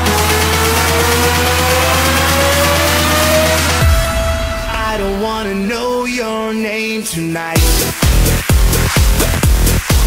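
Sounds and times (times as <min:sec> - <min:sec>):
electronic dance music build-up: 0:00.0 - 0:10.0.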